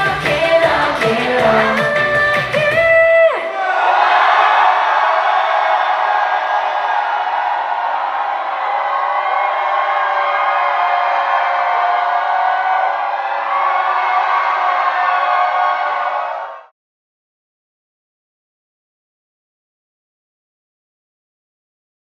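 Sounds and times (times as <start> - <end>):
audience cheering and screaming: 0.0 - 16.7.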